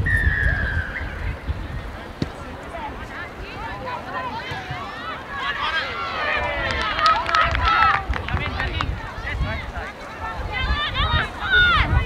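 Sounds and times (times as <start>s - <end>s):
wind rumble on microphone: 0.0s - 3.6s, 6.6s - 12.0s
people shouting and yelling: 0.0s - 12.0s.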